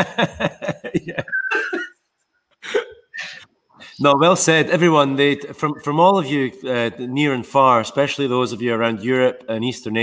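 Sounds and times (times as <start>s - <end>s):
man chuckling: 0.0s - 2.0s, 2.6s - 3.4s.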